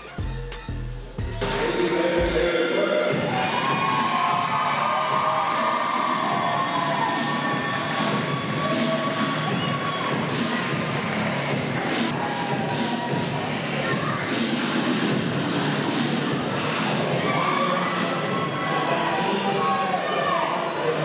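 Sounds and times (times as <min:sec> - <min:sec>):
music over sound system: 0:00.0 - 0:19.8
crowd cheering and shouting: 0:00.0 - 0:21.0.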